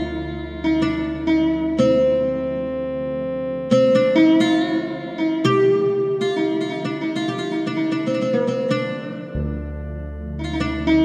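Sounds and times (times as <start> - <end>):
plucked string instrument: 0.0 - 11.0.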